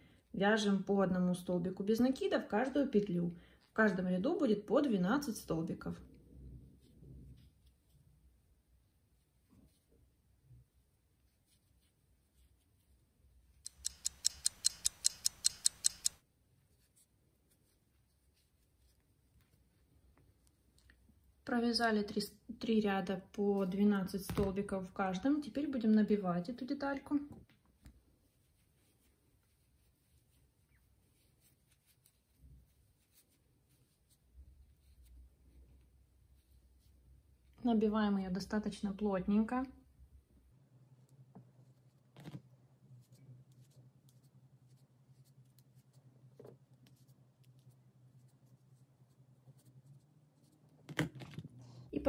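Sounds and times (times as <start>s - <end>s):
soft handling of stuffing: 6.0s - 13.6s, 16.2s - 21.4s, 27.4s - 37.6s, 40.4s - 50.8s
soft rustling: 10.8s - 13.1s, 27.4s - 37.1s
tweezers clicking: 13.6s - 16.2s.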